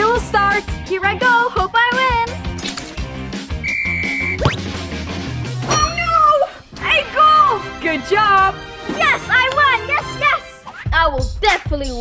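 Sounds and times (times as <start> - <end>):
whistle-like tone: 3.6 - 4.6
background music: 4.4 - 11.0.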